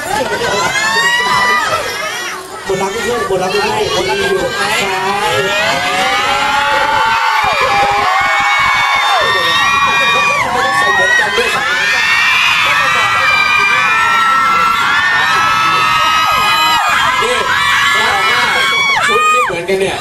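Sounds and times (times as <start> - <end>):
audience cheering and screaming: 0.0 - 20.0.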